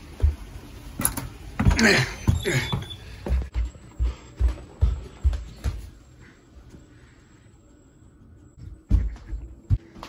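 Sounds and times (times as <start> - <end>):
footsteps thumping: 1.6 - 6.0, 8.6 - 10.0.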